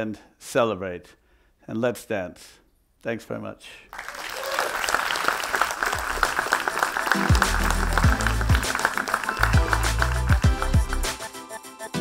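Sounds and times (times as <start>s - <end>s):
audience applause: 3.9s - 11.2s
electronic music with heavy bass: 7.1s - 12.0s.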